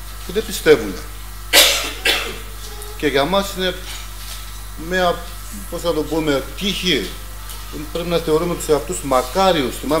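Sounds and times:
man coughing: 0:01.5 - 0:02.5.

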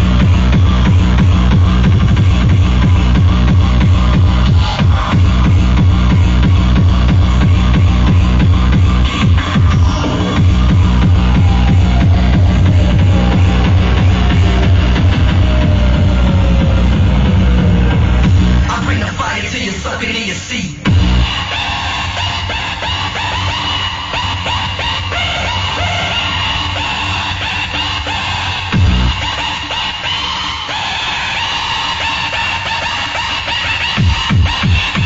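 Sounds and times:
distorted kick drum: 0:00.0 - 0:19.5, 0:20.8 - 0:21.5, 0:28.7 - 0:29.2, 0:34.0 - 0:35.0
gliding synth lines: 0:09.1 - 0:18.8.

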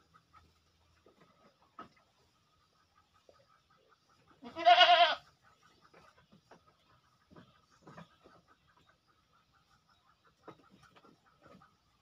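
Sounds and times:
goat bleating: 0:04.4 - 0:05.3.

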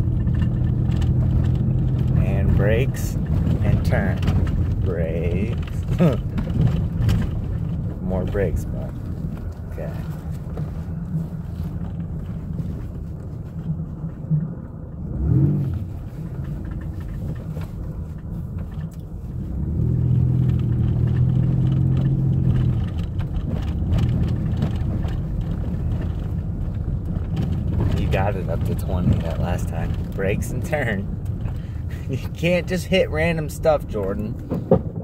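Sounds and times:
van engine from inside cabin: 0:00.0 - 0:35.0
tyre noise: 0:15.1 - 0:35.0.

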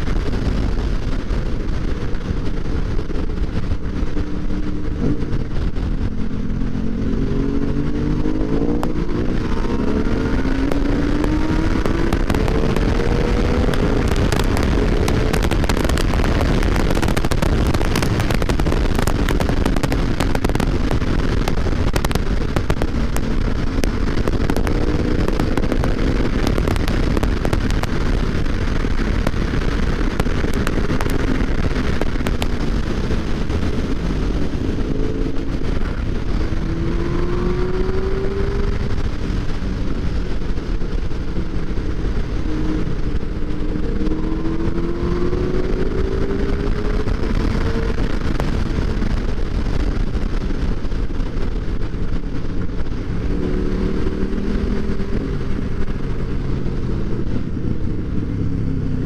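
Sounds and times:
motorcycle engines revving: 0:00.0 - 0:59.0
rush of wind and road noise: 0:00.0 - 0:59.0.

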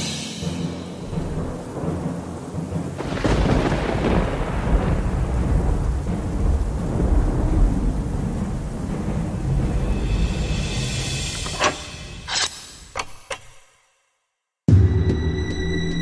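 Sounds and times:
steady rain: 0:00.2 - 0:11.3
thunder rumbling: 0:00.7 - 0:11.4.

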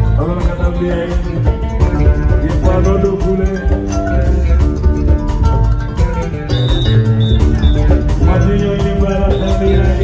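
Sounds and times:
drums keeping a steady beat: 0:00.0 - 0:10.0
plucked kora: 0:00.0 - 0:10.0.

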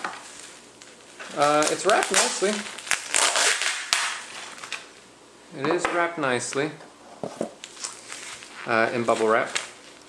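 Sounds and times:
bubble wrap crinkling: 0:00.0 - 0:05.1, 0:07.6 - 0:10.0.

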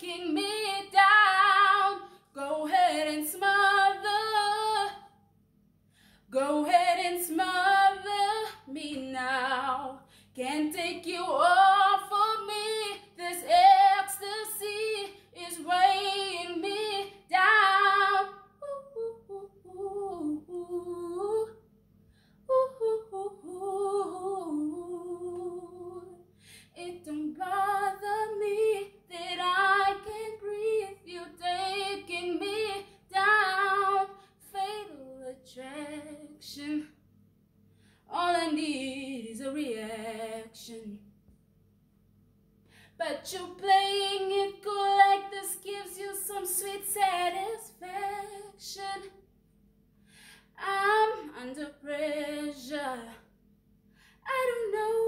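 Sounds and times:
woman singing unaccompanied: 0:00.0 - 0:05.1, 0:06.3 - 0:21.6, 0:22.5 - 0:26.2, 0:26.8 - 0:36.9, 0:38.1 - 0:41.0, 0:43.0 - 0:49.2, 0:50.6 - 0:53.2, 0:54.3 - 0:55.0.

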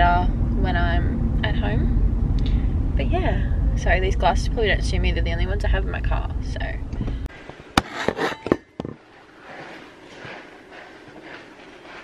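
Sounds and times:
phone handling knocks and scrapes: 0:07.8 - 0:09.0
clothing rustling: 0:09.0 - 0:12.0.

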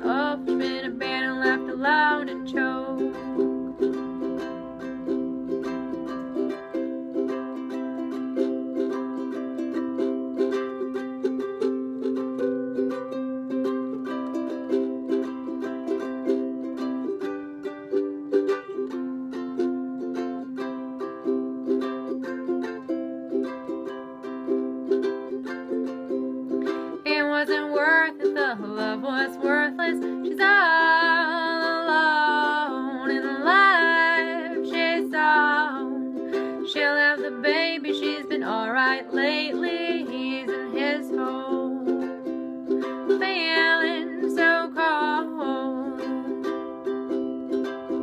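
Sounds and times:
ukulele strumming: 0:00.0 - 0:48.0.

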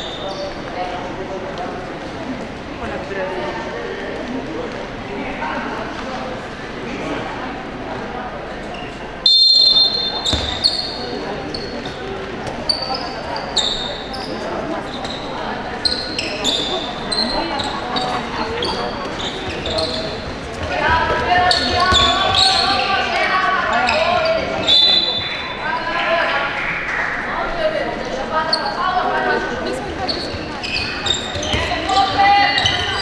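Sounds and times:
sneakers squeaking: 0:08.7 - 0:25.9, 0:29.7 - 0:33.0
referee's whistle blast: 0:09.2 - 0:10.9.

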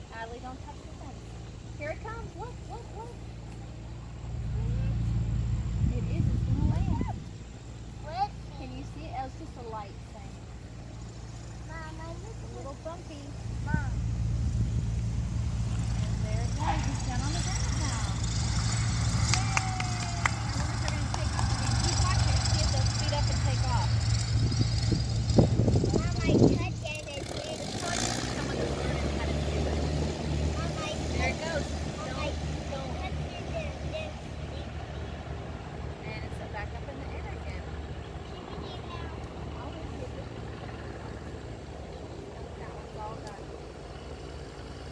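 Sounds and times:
propeller airplane passing: 0:00.0 - 0:44.9.

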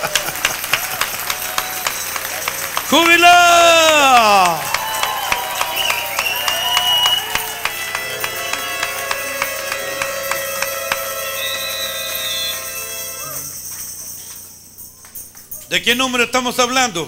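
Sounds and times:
held pitched sounds: 0:00.0 - 0:15.2
rhythmic hand-clapping: 0:00.0 - 0:15.8
tambourine: 0:00.0 - 0:16.7.

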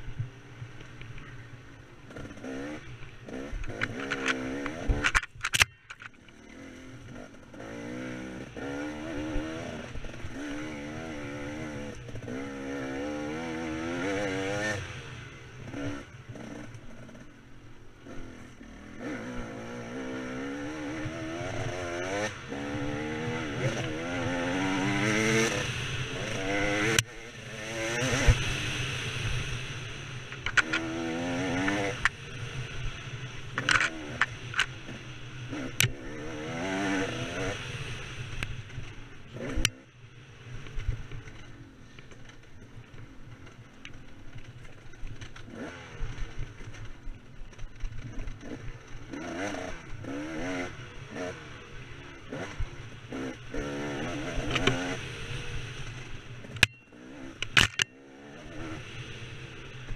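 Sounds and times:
dirt bike engine revving: 0:02.0 - 0:44.4, 0:45.2 - 0:59.9.

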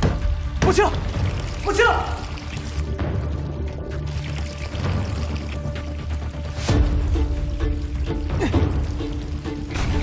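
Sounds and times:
background music with low drone: 0:00.0 - 0:10.0
water pouring into metal tank: 0:00.9 - 0:10.0.

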